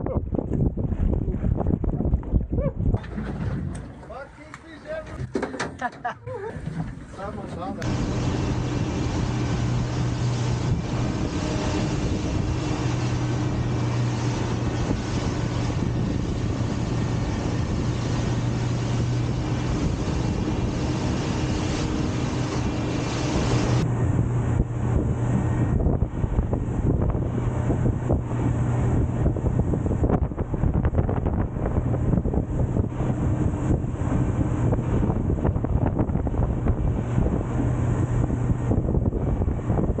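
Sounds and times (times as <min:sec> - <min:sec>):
wind buffeting microphone: 0:00.0 - 0:04.2, 0:06.6 - 0:40.0
outboard motor running: 0:00.0 - 0:40.0
water rushing along hull: 0:00.0 - 0:40.0.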